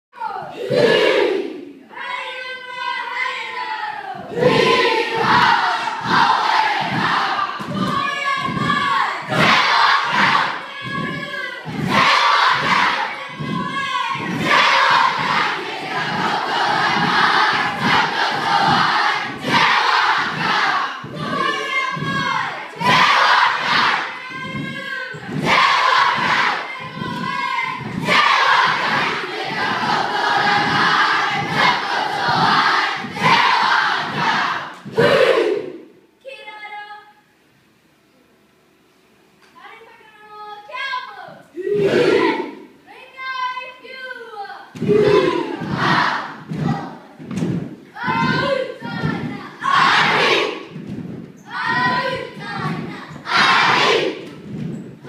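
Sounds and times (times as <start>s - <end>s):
children chanting and shouting: 0.2s - 37.2s, 39.6s - 55.0s.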